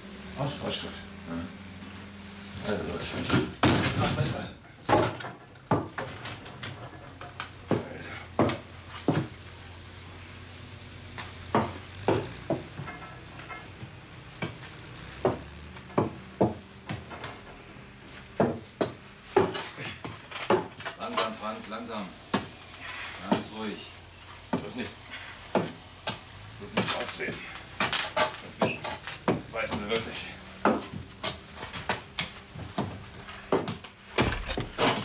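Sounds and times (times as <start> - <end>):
steady low hum: 0.0 - 5.7, 6.4 - 35.0.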